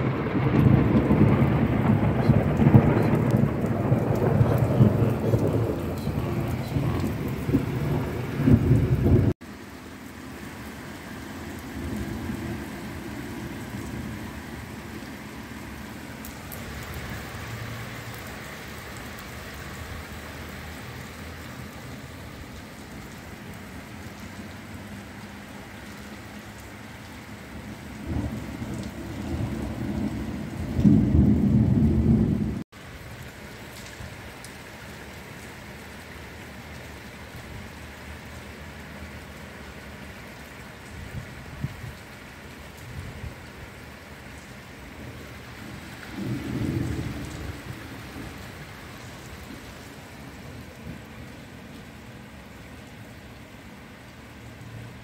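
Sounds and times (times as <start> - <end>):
heavy rain pouring: 0.0 - 55.0.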